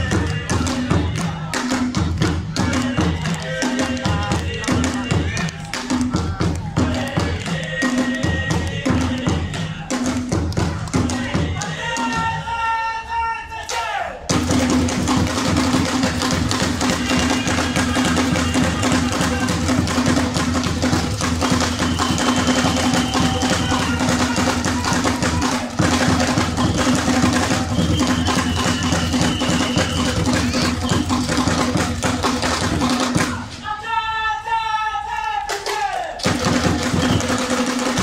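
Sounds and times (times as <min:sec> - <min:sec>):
voices: 0:16.7 - 0:20.2, 0:21.4 - 0:32.1.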